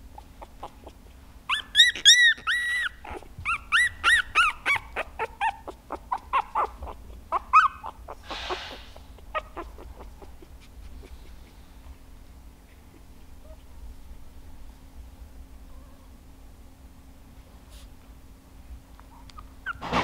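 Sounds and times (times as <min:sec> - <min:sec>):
puppies whining and squealing: 0:00.0 - 0:11.8, 0:12.6 - 0:13.9, 0:19.1 - 0:20.0
brief hiss of noise: 0:08.2 - 0:09.0.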